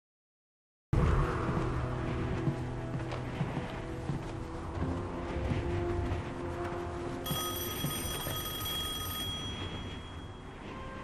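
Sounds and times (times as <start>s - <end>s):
telephone bell ringing: 7.3s - 10.6s.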